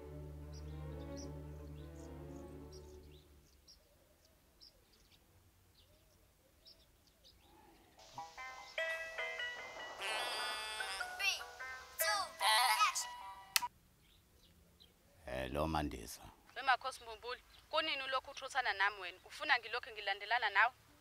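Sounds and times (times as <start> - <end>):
phone music ringtone: 8.2 - 13.7.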